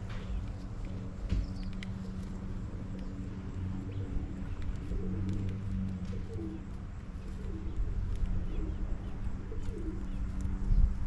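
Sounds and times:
pigeons cooing: 0:00.0 - 0:11.0
small birds chirping: 0:00.0 - 0:11.0
steady low hum: 0:00.0 - 0:11.0.

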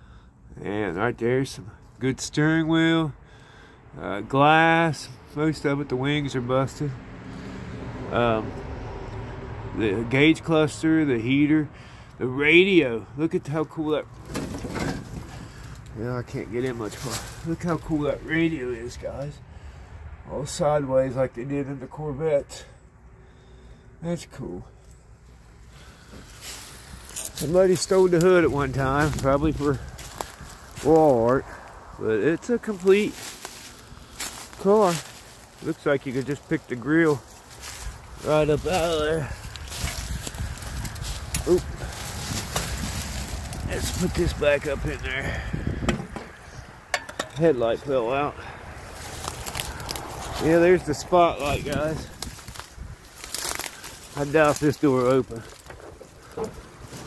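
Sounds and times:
rustling and scuffing in a car: 0:14.0 - 0:19.2, 0:25.3 - 0:31.7, 0:32.4 - 0:45.2, 0:48.8 - 0:57.0.

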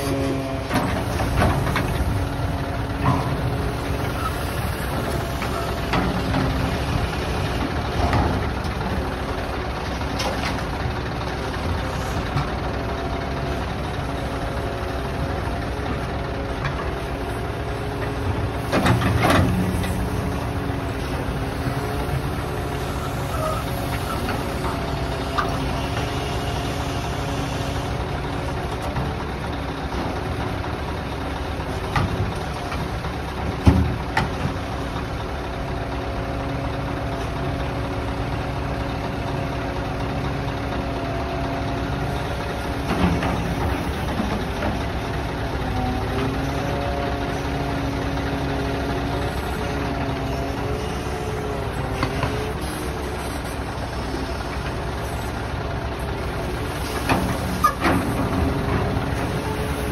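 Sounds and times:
truck engine running: 0:00.0 - 0:59.9.

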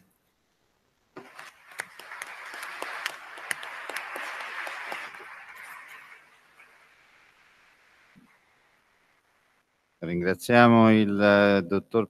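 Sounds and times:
audience applauding: 0:01.2 - 0:08.2.

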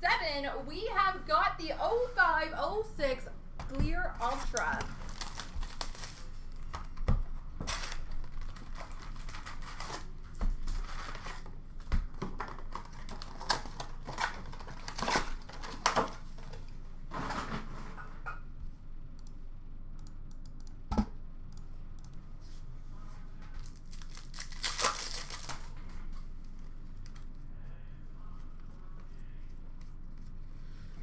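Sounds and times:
cardboard tearing and rustling: 0:04.2 - 0:06.4, 0:07.7 - 0:11.4, 0:12.4 - 0:16.2, 0:23.7 - 0:25.8.

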